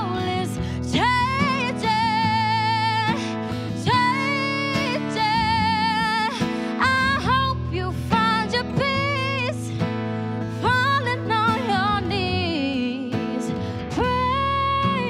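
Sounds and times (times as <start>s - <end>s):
woman singing with vibrato: 0.0s - 9.9s, 10.5s - 15.0s
strummed acoustic guitar: 0.0s - 15.0s.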